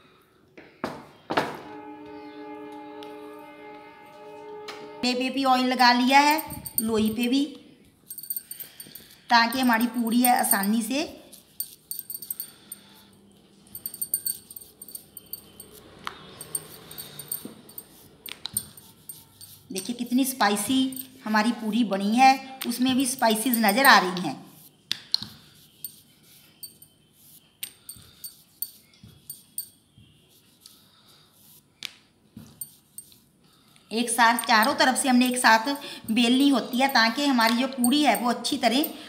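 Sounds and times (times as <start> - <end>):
bangles and rings clinking: 6.1 - 24.6, 25.5 - 30.8, 32.4 - 39.0
rolling pin rolling dough on stone: 13.8 - 21.9.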